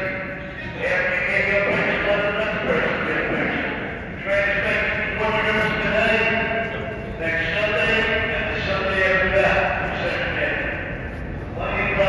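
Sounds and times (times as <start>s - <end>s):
crowd voices: 0.0s - 12.0s
low train rumble: 0.0s - 12.0s.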